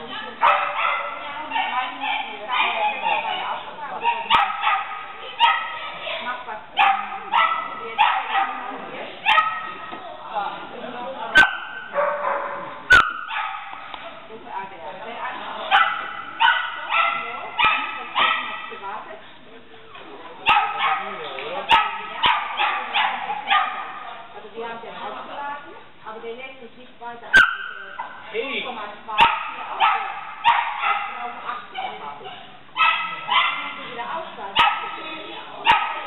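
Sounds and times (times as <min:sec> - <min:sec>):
dog barking high-pitched yaps: 0:11.4 - 0:13.8, 0:27.4 - 0:27.8, 0:29.2 - 0:31.2, 0:32.8 - 0:33.7.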